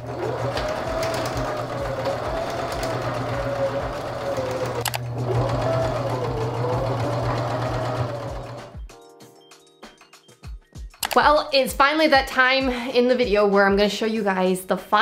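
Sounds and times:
sewing machine stitching: 0.0s - 8.8s.

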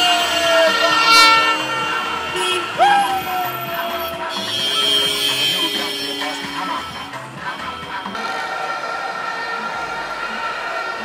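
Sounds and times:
loud sliding horn blasts: 0.0s - 10.9s
loud music with steady beat: 0.0s - 11.0s
vehicle horns tooting: 0.0s - 11.0s.

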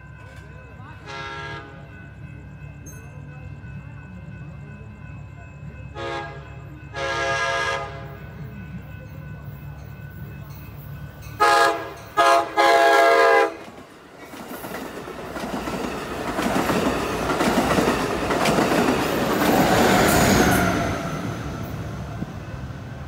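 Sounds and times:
train horn blasts: 1.0s - 1.8s, 5.9s - 8.2s, 11.4s - 13.6s
train rushing past: 5.9s - 23.0s
train wheel clatter: 8.4s - 21.1s.

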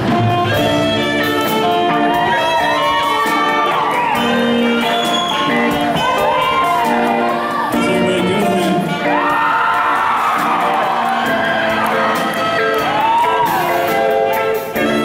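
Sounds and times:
audience cheering and whooping: 0.0s - 15.0s
drums: 0.0s - 15.0s
guitar: 0.0s - 15.0s
piano: 0.0s - 15.0s
saxophone lead melody: 0.0s - 15.0s.

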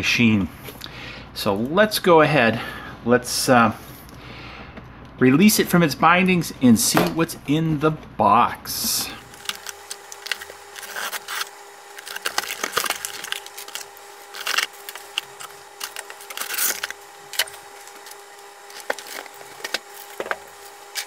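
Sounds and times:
faint steady hum: 0.0s - 21.0s
cardboard and packaging rustling: 8.9s - 21.0s
knife cutting plastic strapping: 9.2s - 21.0s.

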